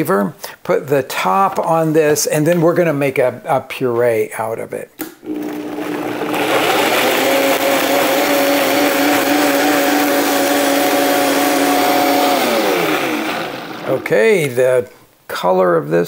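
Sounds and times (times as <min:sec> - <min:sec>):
blender motor running: 0:05.2 - 0:14.0.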